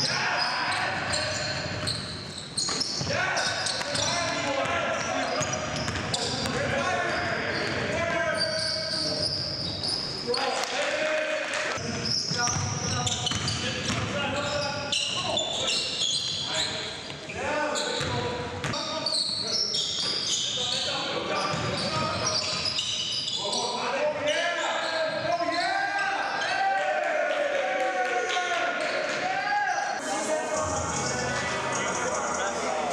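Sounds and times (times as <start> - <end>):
sneakers squeaking: 0.0 - 10.7, 11.8 - 26.6
players calling out: 0.0 - 16.8.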